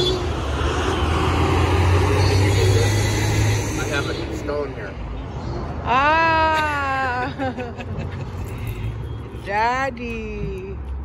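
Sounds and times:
road traffic rumble: 0.0s - 11.0s
voices: 9.4s - 10.9s.

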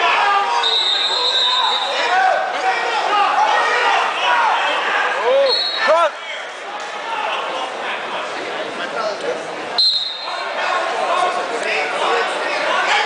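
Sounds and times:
echoing crowd chatter: 0.0s - 13.0s.

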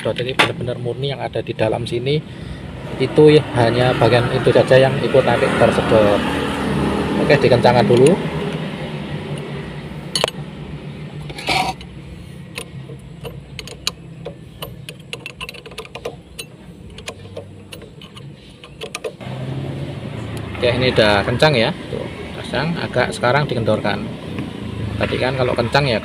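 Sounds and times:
wrench clicking and tapping on metal: 10.1s - 10.4s, 12.5s - 19.2s.

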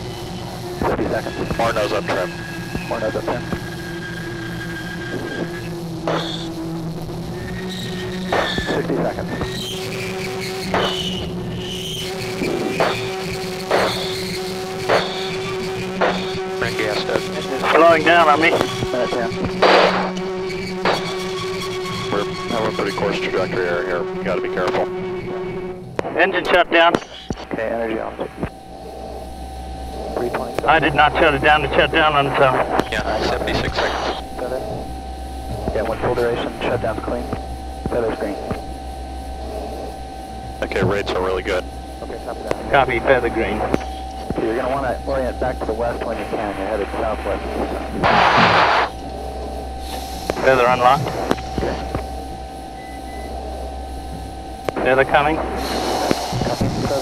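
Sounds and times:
rush of noise: 0.0s - 24.9s, 25.8s - 57.0s
cockpit audio hum and hiss: 0.0s - 57.0s
constant tones: 0.0s - 57.0s
rocket motor rumble: 0.0s - 57.0s.

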